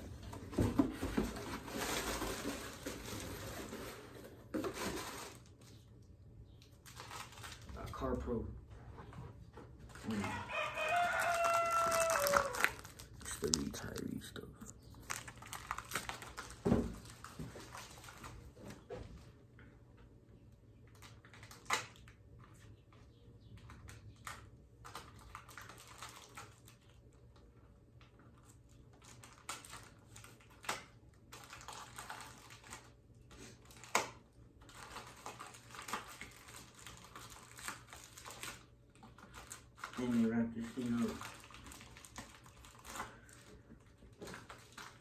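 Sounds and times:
plastic wrapping crinkling: 1.2s - 5.8s, 6.6s - 8.2s, 9.7s - 18.9s, 20.8s - 22.6s, 23.7s - 27.4s, 28.0s - 45.0s.

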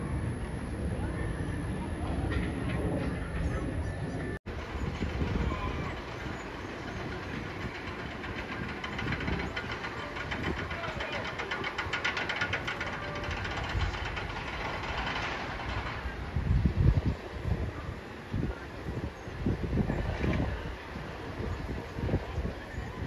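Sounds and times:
roller coaster rumbling on track: 0.0s - 23.0s
rapid even clicking: 6.2s - 16.0s.

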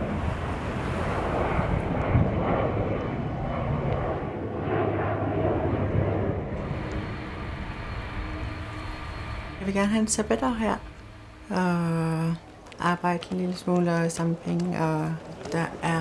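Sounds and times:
jet engines droning: 0.0s - 16.0s
faint steady tone: 6.6s - 13.2s.

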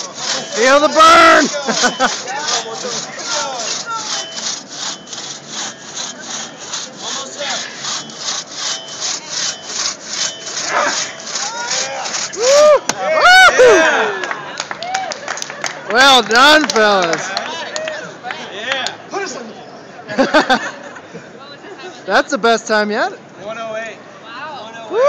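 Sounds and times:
crosscut saw cutting log: 0.0s - 12.6s.

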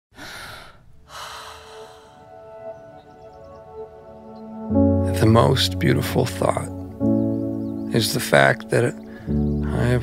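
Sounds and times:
person breathing: 0.1s - 2.4s, 9.0s - 9.4s.

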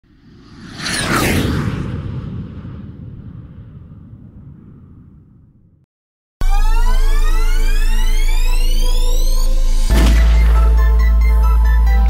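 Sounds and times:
whoosh sweeping down: 0.1s - 5.1s
low rumble: 0.2s - 5.8s.

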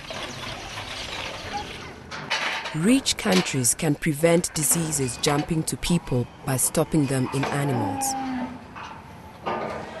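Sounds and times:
cow mooing: 7.5s - 8.6s.

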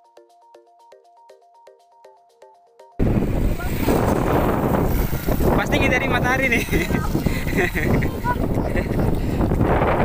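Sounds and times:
wind buffeting microphone: 3.0s - 10.0s.

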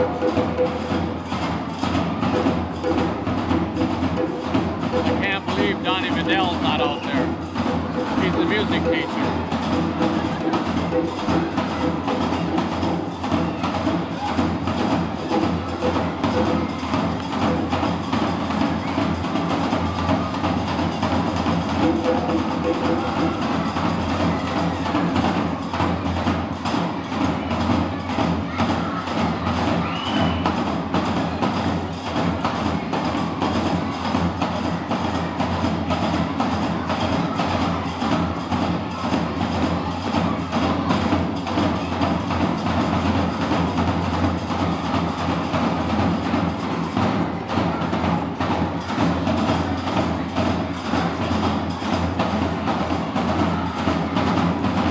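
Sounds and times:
large drums beaten with sticks: 0.0s - 54.9s.

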